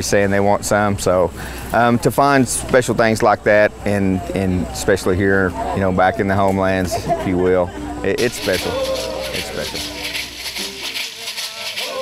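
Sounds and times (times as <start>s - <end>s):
man singing: 8.2s - 12.0s
shell shakers rattling: 8.2s - 12.0s.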